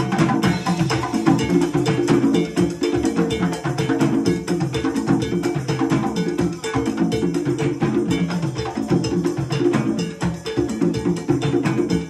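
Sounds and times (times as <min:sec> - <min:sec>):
conga drums: 0:00.0 - 0:12.0
cowbell: 0:00.0 - 0:12.0.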